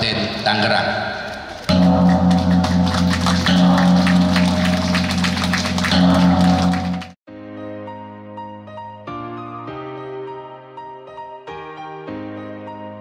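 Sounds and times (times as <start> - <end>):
gong ringing deep hum: 1.7 - 7.2.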